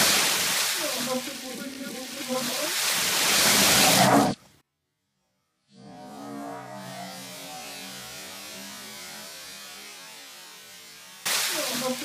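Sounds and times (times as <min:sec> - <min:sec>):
water pouring and splashing on tiles: 0:00.0 - 0:04.4.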